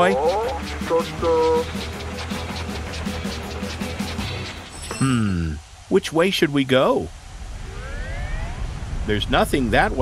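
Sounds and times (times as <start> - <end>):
cartoon train rumbling on track: 0.0 - 4.7
faint rising tone: 7.4 - 9.1.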